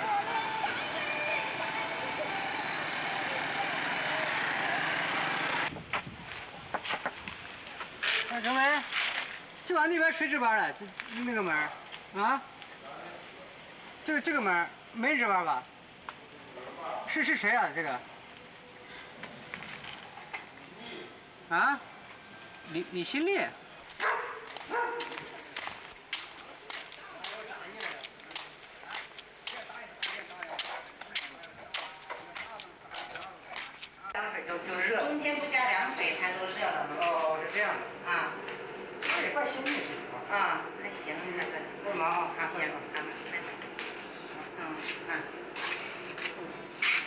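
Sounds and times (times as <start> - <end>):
traffic noise: 0.0 - 15.0, 15.6 - 47.0
footsteps on pavement: 5.8 - 8.5, 23.8 - 34.1, 43.6 - 47.0
steady high whine: 23.8 - 34.2
faint indistinct voices: 24.6 - 34.2.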